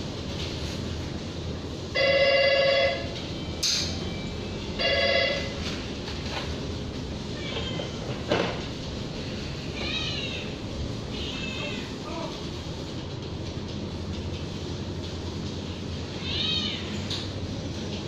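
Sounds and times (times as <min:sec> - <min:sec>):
kittens mewing: 0:09.7 - 0:12.0.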